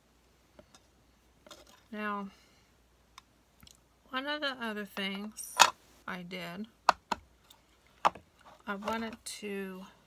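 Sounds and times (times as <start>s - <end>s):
hands tapping and rustling chipboard: 8.0s - 9.3s.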